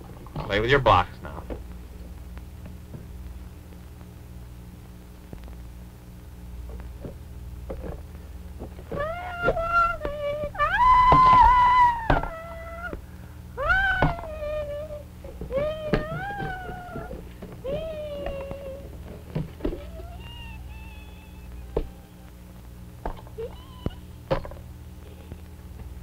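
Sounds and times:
squeaky babbling puppet voice: 13.6s - 18.9s, 19.8s - 22.3s, 23.4s - 24.2s.

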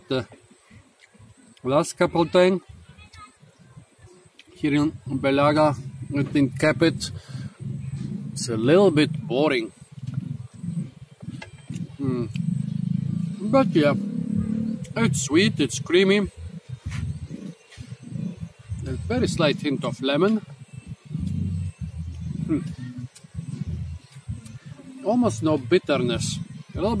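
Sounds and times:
man chewing food: 9.1s - 13.4s, 20.6s - 24.7s
small mouth clicks: 10.0s - 13.3s, 20.9s - 24.7s.

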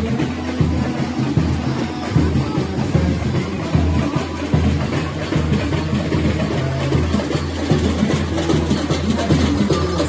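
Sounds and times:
deep bass drum beats: 0.0s - 10.0s
snare and hand percussion: 0.0s - 10.0s.

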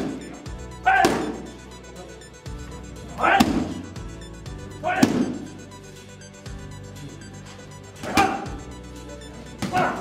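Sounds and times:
background music: 0.0s - 10.0s
kicks hitting strike pads: 3.2s - 3.8s, 4.9s - 5.4s.

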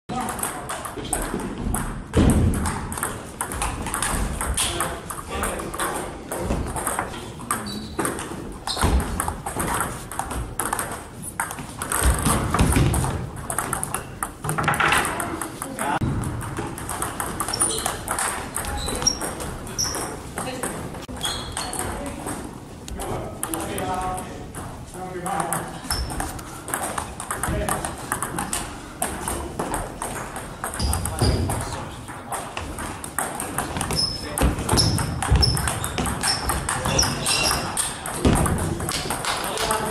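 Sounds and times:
distant table tennis clicks: 0.1s - 22.4s, 25.3s - 39.9s
table tennis ball clicking: 2.6s - 24.6s.

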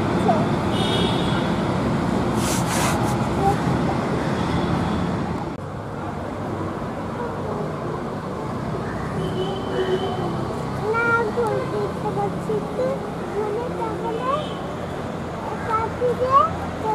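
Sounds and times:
road traffic: 0.0s - 16.9s.

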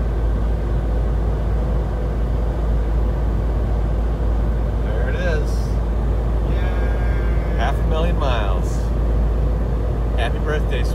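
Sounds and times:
road and engine drone in van: 0.0s - 10.9s.

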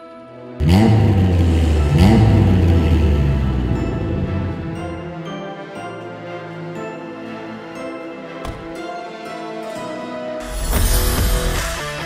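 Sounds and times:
car engine revving: 0.6s - 5.2s.

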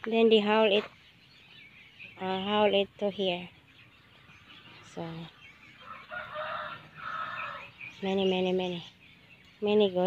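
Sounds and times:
rooster crowing: 5.8s - 7.7s.

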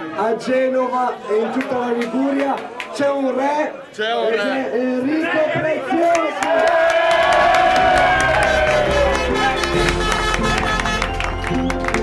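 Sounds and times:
crowd cheering and shouting: 5.2s - 12.0s
long held shout: 6.5s - 11.1s.

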